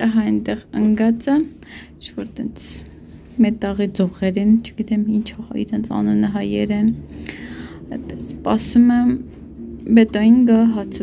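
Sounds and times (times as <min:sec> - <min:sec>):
person speaking: 0:00.0 - 0:07.1.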